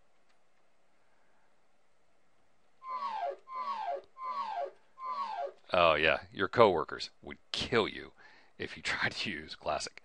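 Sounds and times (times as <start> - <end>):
short falling tone: 2.8 - 5.6.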